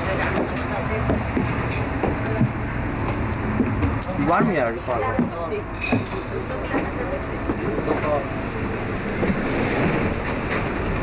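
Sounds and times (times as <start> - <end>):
bus engine rumbling: 0.0 - 11.0.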